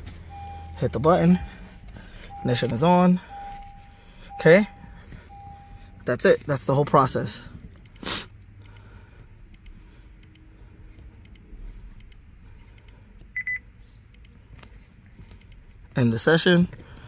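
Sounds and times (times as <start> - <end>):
low steady background hum: 0.0 - 17.0
high electronic beep pulses: 0.2 - 6.1.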